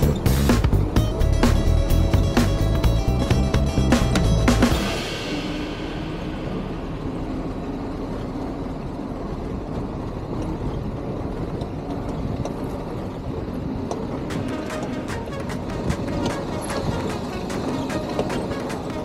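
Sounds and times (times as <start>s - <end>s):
jeep engine running: 0.0s - 19.0s
sharp ticks and rattles: 11.5s - 19.0s.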